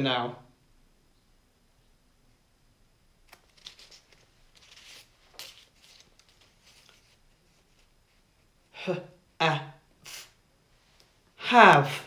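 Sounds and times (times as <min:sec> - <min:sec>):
paper cards clicking: 0:03.3 - 0:07.0
paper cards rustling: 0:03.3 - 0:08.5.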